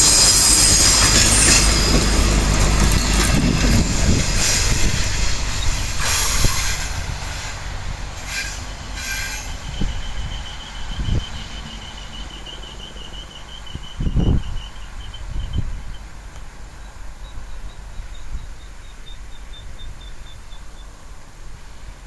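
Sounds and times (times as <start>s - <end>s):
train wheels squealing: 0.0s - 7.6s, 8.2s - 16.1s
train wheels rumbling over rails: 0.0s - 20.1s.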